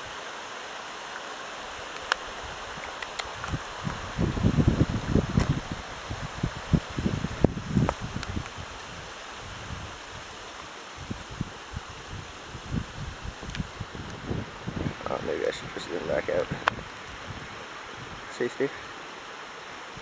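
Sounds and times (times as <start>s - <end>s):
river rushing: 0.0s - 20.0s.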